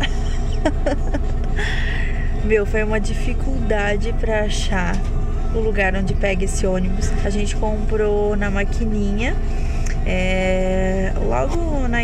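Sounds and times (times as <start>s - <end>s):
person laughing: 0.0s - 1.9s
bus engine rumble: 0.0s - 12.0s.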